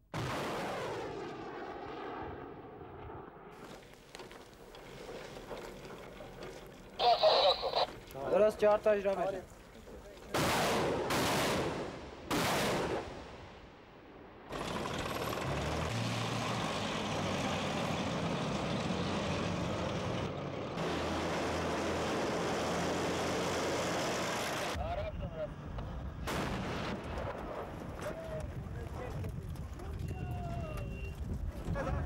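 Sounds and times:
gunshots: 10.3s - 13.5s
vehicle engine humming: 14.5s - 24.8s.

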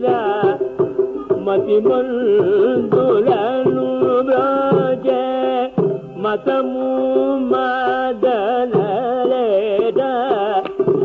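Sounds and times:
man singing long held notes: 0.0s - 10.9s.

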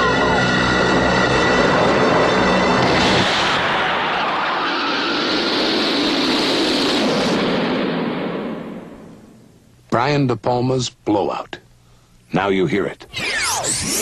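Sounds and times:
musical drone of held tones: 0.0s - 3.3s
loud rushing roar: 0.0s - 9.0s.

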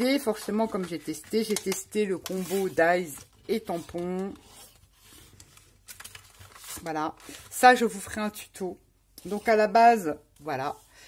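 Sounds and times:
woman speaking: 0.0s - 4.4s, 6.8s - 10.9s
plastic packaging crinkling: 0.3s - 7.9s.

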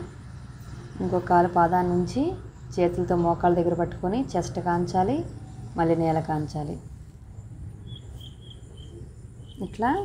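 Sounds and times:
faint high-pitched chirping: 0.0s - 10.0s.

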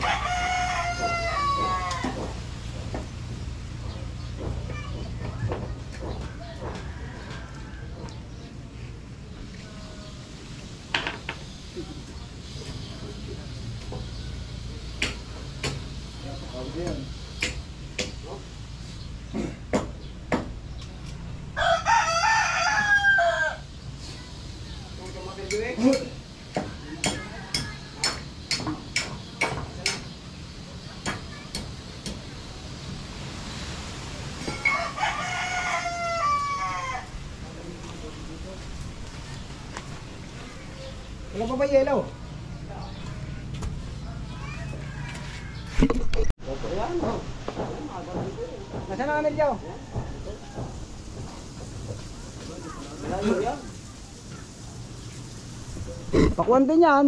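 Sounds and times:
rooster crowing: 0.0s - 2.4s, 6.4s - 8.2s, 21.5s - 23.7s, 34.5s - 37.3s, 44.4s - 45.8s, 48.4s - 51.7s.

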